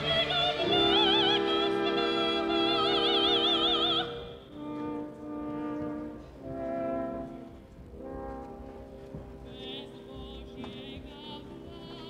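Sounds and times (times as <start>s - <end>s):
orchestra playing held chords: 0.0s - 10.8s.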